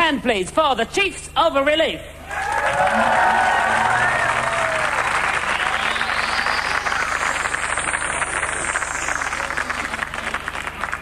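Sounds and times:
audience applauding: 0:02.3 - 0:11.0.

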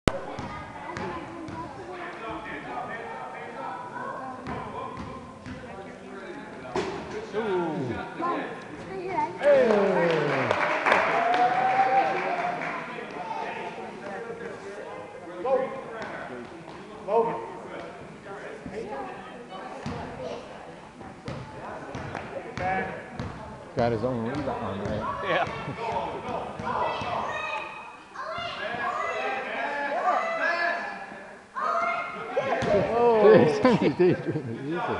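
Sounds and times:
voices of people in a gym: 0:00.0 - 0:34.9.

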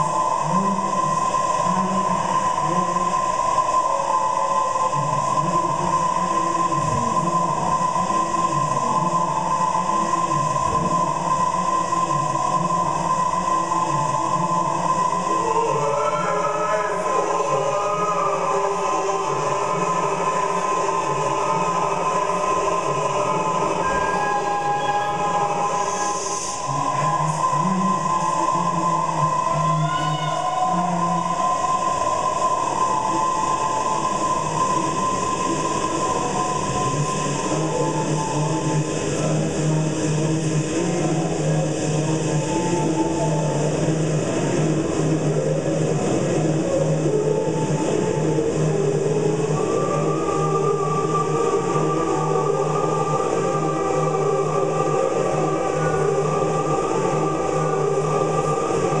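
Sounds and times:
layered looped voices drone: 0:00.0 - 0:59.0
low hum: 0:00.0 - 0:59.0.

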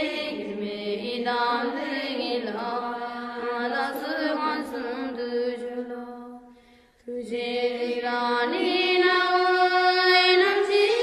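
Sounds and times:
devotional chant: 0:00.0 - 0:11.0.

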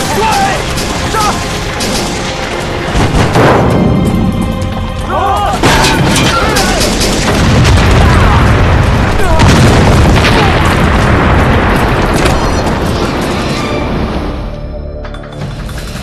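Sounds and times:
men yelling: 0:00.0 - 0:01.5, 0:05.0 - 0:05.6
explosion booming and rumbling: 0:00.0 - 0:04.6, 0:05.6 - 0:14.5
sharp cracks: 0:00.0 - 0:04.7
dramatic music: 0:00.0 - 0:16.0.

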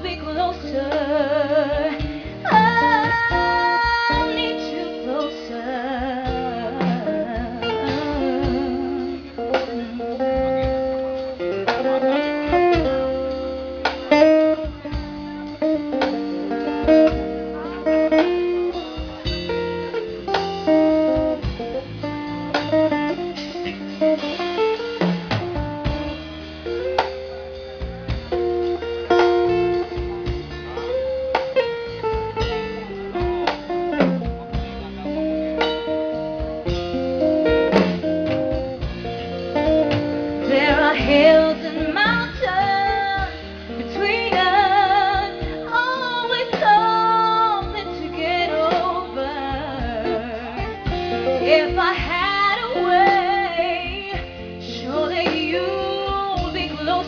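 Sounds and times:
acoustic band playing a ballad: 0:00.0 - 0:57.0
low bass notes: 0:00.0 - 0:57.0
plucked guitar melody: 0:00.0 - 0:57.0.

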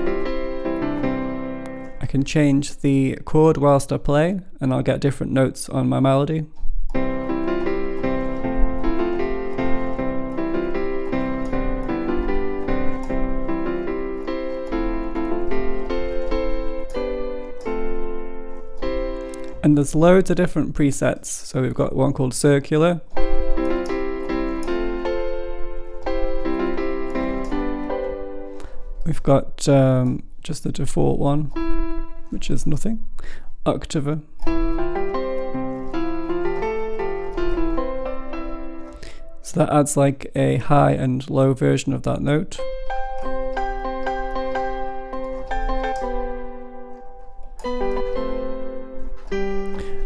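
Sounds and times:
synth piano melody over chord: 0:00.0 - 0:02.2, 0:06.9 - 0:20.8, 0:23.1 - 0:29.2, 0:31.4 - 0:33.2, 0:34.4 - 0:39.9, 0:42.1 - 0:50.0.

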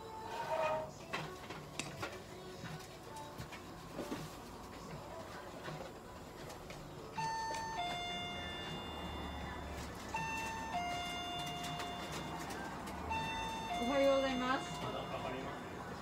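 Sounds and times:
electronic ding-dong chime: 0:13.1 - 0:15.9.

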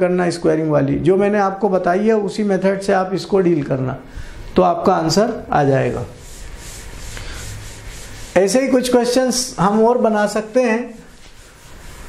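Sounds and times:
duster wiping chalkboard: 0:05.6 - 0:12.0.

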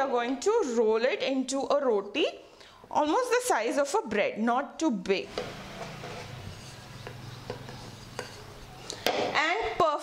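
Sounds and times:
rolling pin rolling dough: 0:05.4 - 0:09.0.

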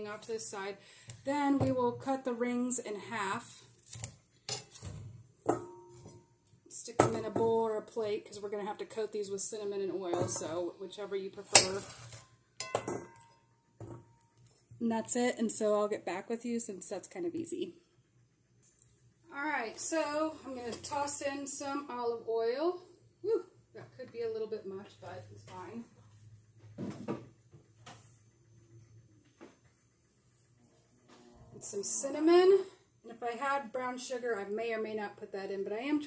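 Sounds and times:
clinks against steel bowl: 0:05.5 - 0:06.2, 0:11.6 - 0:14.0
kitchen items knocking: 0:11.6 - 0:14.1.

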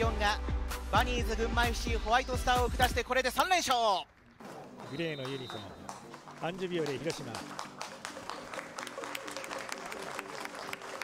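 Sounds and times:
faint background music: 0:00.0 - 0:11.0
crowd applause: 0:04.4 - 0:11.0.

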